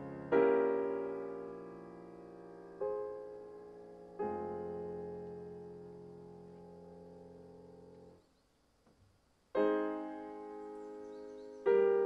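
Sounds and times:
piano chords: 0.0s - 8.2s, 9.5s - 12.0s.

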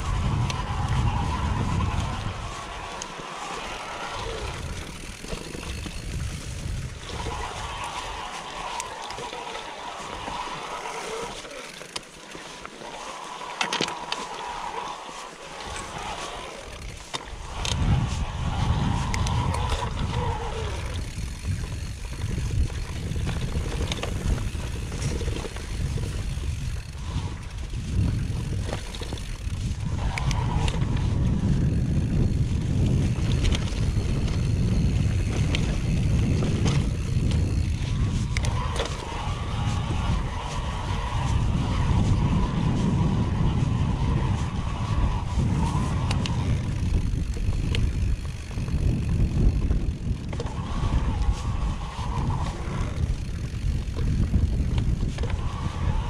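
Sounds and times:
wind buffeting microphone: 0.0s - 12.0s, 13.1s - 56.0s
bike knocking and rattling: 0.0s - 56.0s
bike tyres rumbling: 0.0s - 56.0s.

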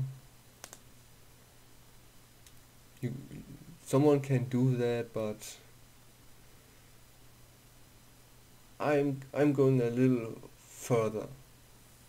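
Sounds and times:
low steady hum: 0.0s - 12.0s
faint clicks: 0.6s - 0.8s.

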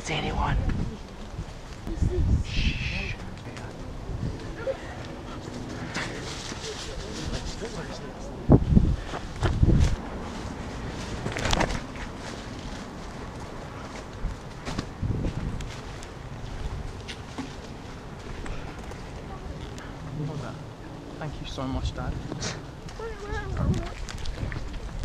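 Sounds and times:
rustles and clicks: 3.3s - 8.0s, 9.0s - 19.9s
footsteps on fallen leaves: 9.9s - 19.1s.

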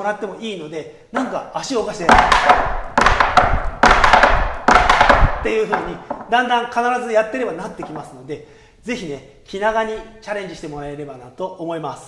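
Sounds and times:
tap shoes on wooden board: 1.9s - 6.4s.

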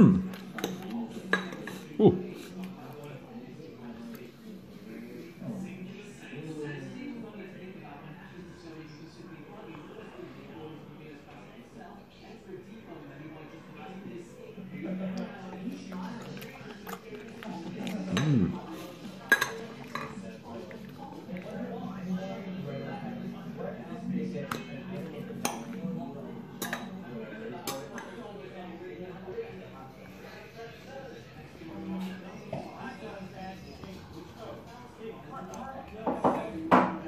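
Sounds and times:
cutlery clinking on ceramic bowl: 0.6s - 1.9s.

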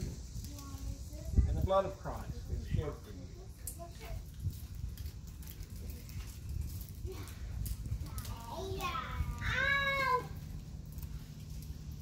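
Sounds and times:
faint crackles: 0.0s - 12.0s
wind buffeting microphone: 0.0s - 12.0s.

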